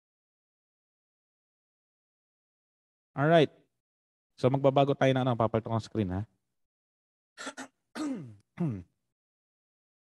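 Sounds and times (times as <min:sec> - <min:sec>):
man clearing his throat: 0:07.4 - 0:09.0.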